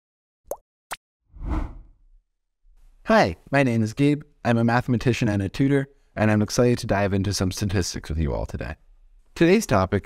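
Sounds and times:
whoosh with low rumble: 0:01.4 - 0:01.9.

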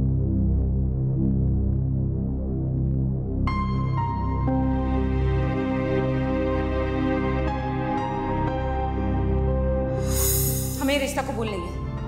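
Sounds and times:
droning deep synth chords: 0:00.0 - 0:10.4.

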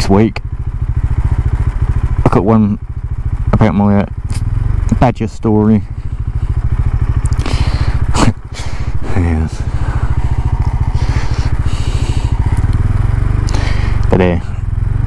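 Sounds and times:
motorcycle engine idling: 0:00.0 - 0:15.0.

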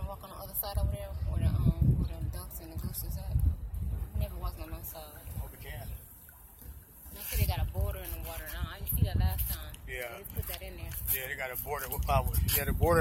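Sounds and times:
voices talking: 0:04.0 - 0:06.2, 0:07.0 - 0:13.0.

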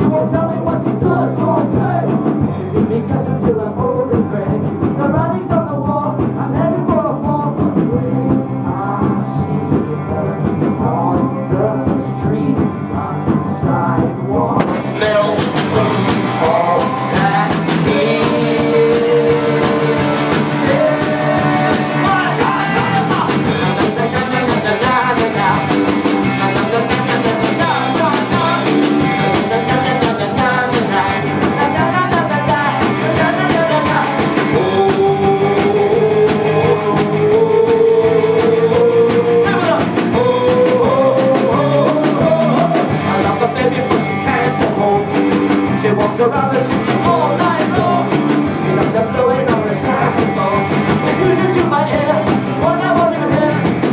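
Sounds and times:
live rock band playing: 0:00.0 - 0:53.9.

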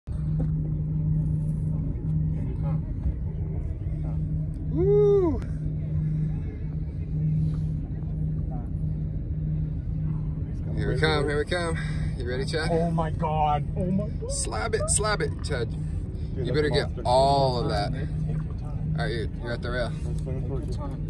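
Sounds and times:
boat engine idling: 0:00.0 - 0:21.0.

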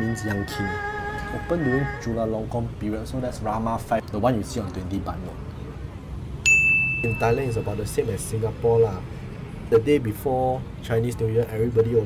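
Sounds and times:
low street hum: 0:00.0 - 0:12.0
bell-like ding: 0:06.5 - 0:08.0.

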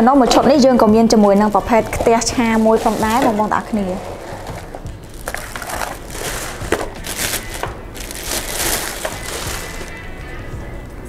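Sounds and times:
plastic wrapping crinkling: 0:01.8 - 0:10.0.

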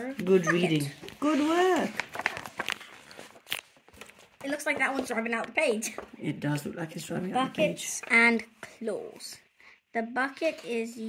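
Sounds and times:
book page turning: 0:00.1 - 0:06.2.

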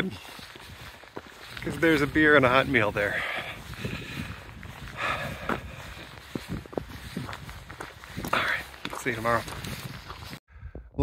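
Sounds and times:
footsteps on trail: 0:00.0 - 0:10.9
person speaking: 0:01.5 - 0:03.7, 0:08.2 - 0:09.6.

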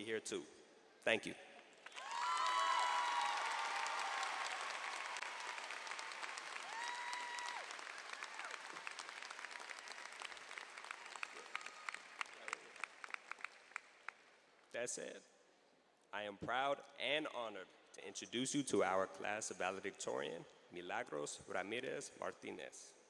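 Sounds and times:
audience applauding and cheering: 0:01.8 - 0:14.2
held whoop: 0:02.0 - 0:05.7, 0:06.6 - 0:08.7.

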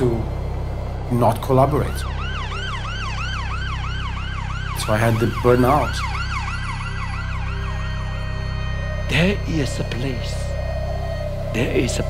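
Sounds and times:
ambulance siren yelping: 0:00.0 - 0:12.0.

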